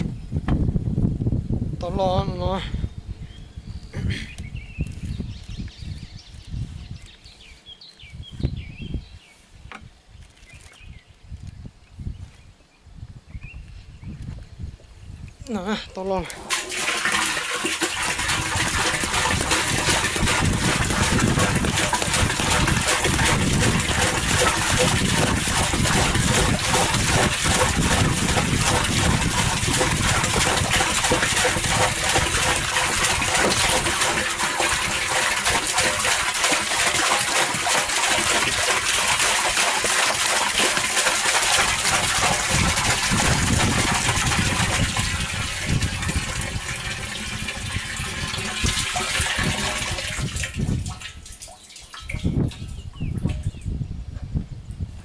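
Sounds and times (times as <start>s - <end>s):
water pouring into a barrel: 16.2s - 53.6s.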